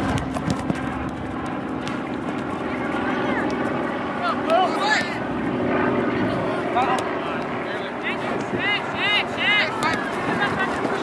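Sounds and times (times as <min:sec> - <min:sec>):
low engine drone: 0:00.0 - 0:08.0
people shouting calls: 0:04.2 - 0:05.3, 0:07.9 - 0:11.0.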